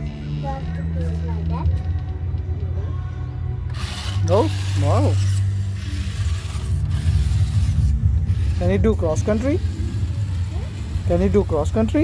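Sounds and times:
toy truck motor whirring: 0:00.0 - 0:01.4, 0:03.7 - 0:12.0.

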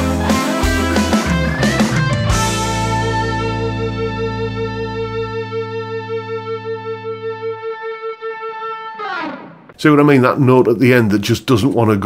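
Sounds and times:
lower backing guitar notes: 0:00.0 - 0:10.4
overdriven electric guitar note: 0:02.1 - 0:09.8.

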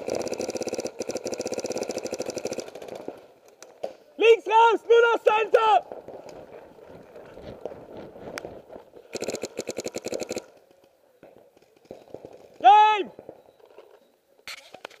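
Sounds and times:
paintball marker firing rapidly: 0:00.0 - 0:03.2, 0:09.1 - 0:10.5
person shouting: 0:04.2 - 0:05.8, 0:12.6 - 0:13.1.

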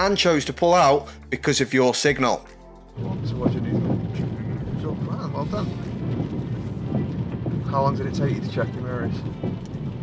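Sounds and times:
car engine rumble inside cabin: 0:05.7 - 0:10.0.

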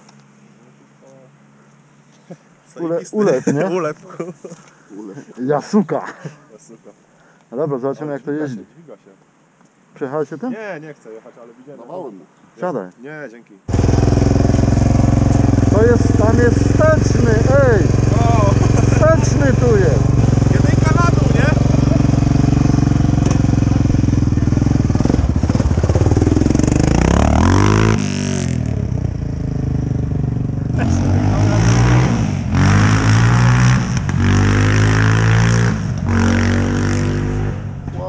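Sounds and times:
quad accelerating: 0:13.7 - 0:38.0
quad engine idling and revving: 0:13.7 - 0:38.0.

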